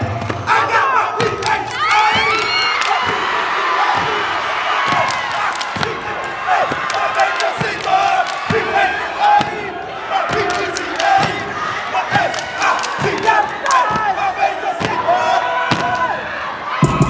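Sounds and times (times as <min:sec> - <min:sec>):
heavy stomping beat: 0:00.0 - 0:17.0
voices yelling and chanting: 0:00.4 - 0:17.0.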